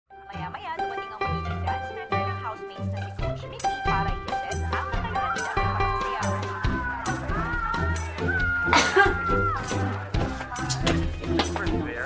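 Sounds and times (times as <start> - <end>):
comedy background music: 0.1 - 12.0.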